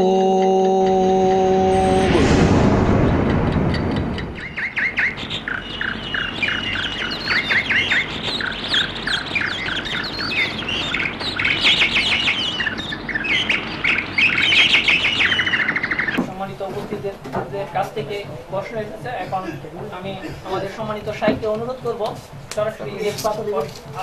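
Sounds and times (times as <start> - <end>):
birds chirping: 0.0 - 24.0.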